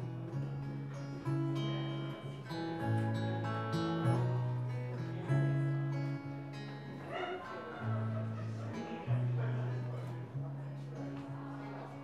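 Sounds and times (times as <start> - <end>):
fingerpicked acoustic guitar: 0.0 - 12.0.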